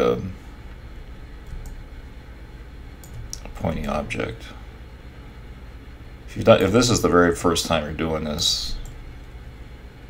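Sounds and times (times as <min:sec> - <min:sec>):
low electrical hum: 0:00.0 - 0:10.0
faint mouse clicks: 0:03.0 - 0:03.5.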